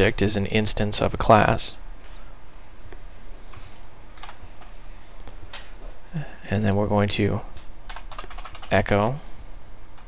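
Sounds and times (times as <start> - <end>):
low steady hum: 0.0 - 10.0
keyboard keystrokes: 7.9 - 8.8.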